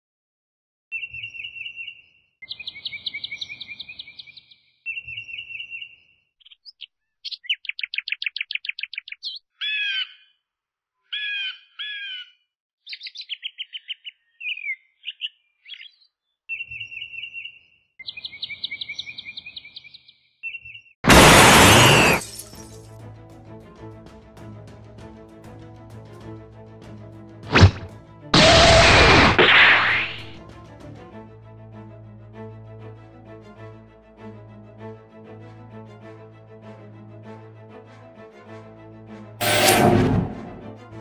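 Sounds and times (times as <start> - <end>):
bird chirps and trills: 0.9 - 10.4, 11.1 - 21.0
noisy crash-like burst: 21.1 - 22.4, 39.4 - 40.8.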